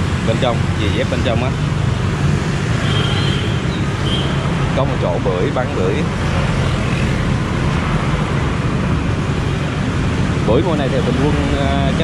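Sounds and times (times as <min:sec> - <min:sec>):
motorbikes and scooters passing: 0:00.0 - 0:12.0.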